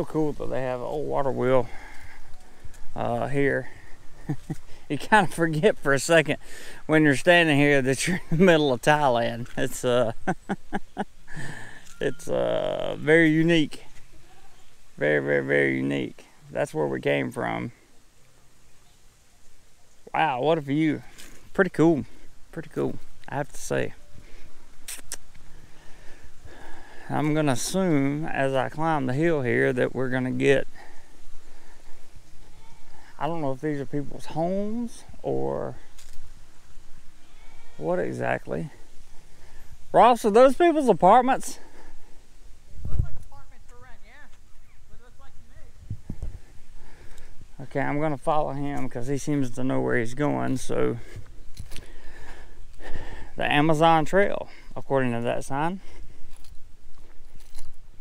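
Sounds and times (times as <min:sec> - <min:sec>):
person breathing sharply: 0:01.6 - 0:02.8, 0:06.4 - 0:06.9, 0:11.3 - 0:12.0, 0:25.4 - 0:27.1, 0:51.0 - 0:53.4.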